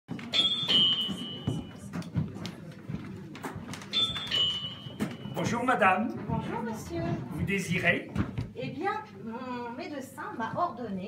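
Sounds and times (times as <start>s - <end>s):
small high-pitched bell dinging: 0.3s - 1.8s, 3.9s - 5.4s.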